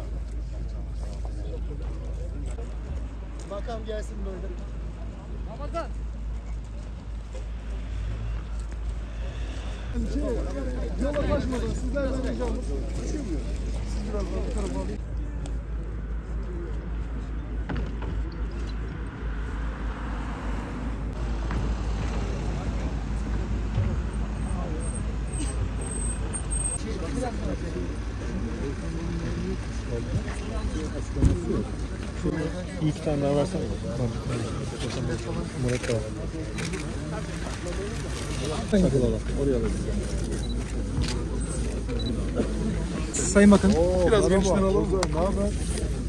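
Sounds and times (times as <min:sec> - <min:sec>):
cars driving slowly past: 0:00.0 - 0:46.0
vehicles rumbling on road: 0:00.0 - 0:46.0
people talking: 0:09.2 - 0:18.8, 0:26.8 - 0:46.0.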